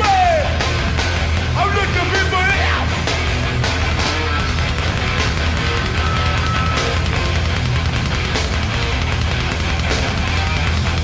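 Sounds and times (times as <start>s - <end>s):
hardcore band playing live: 0.0s - 11.0s.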